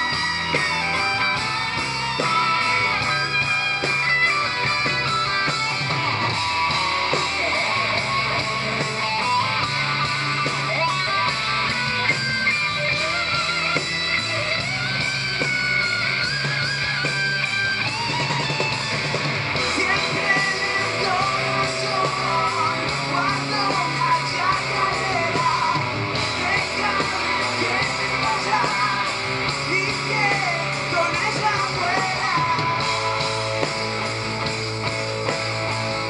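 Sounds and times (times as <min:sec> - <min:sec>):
drums: 0:00.0 - 0:36.0
electric guitar lead with bent notes: 0:00.0 - 0:36.0.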